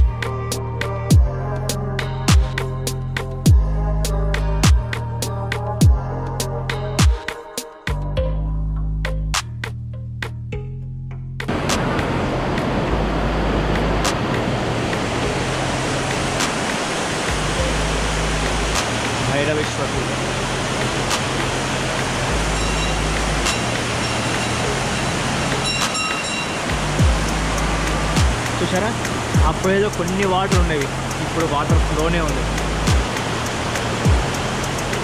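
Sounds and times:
low background music: 0:00.0 - 0:35.0
rushing stream water: 0:11.5 - 0:35.0.

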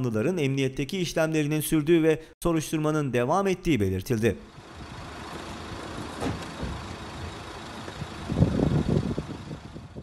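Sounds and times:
motor vehicle running: 0:04.5 - 0:10.0
low thumps and rumbling: 0:04.8 - 0:10.0.

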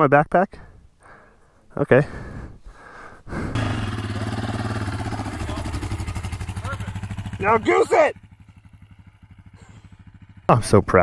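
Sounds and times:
small engine idling: 0:03.5 - 0:11.0.

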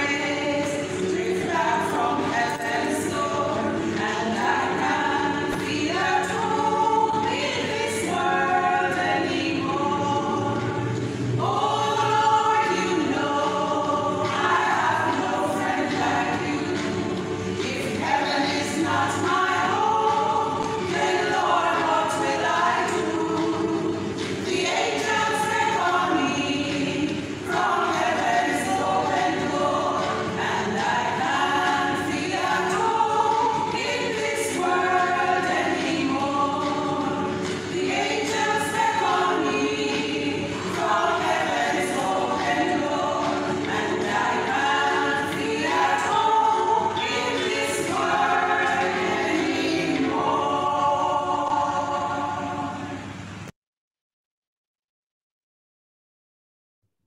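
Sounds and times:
women's choir singing a cappella: 0:00.0 - 0:53.5.

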